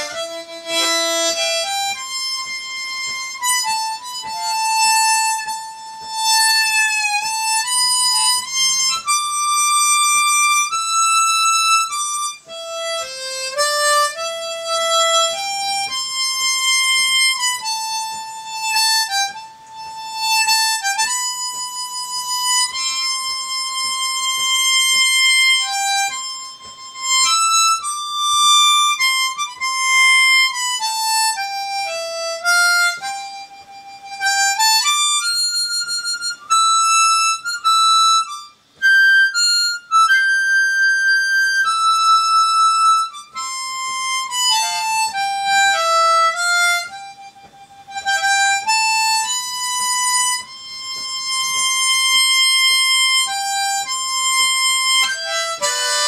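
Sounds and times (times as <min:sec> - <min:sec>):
harmonica slow melody: 0:00.0 - 0:56.0.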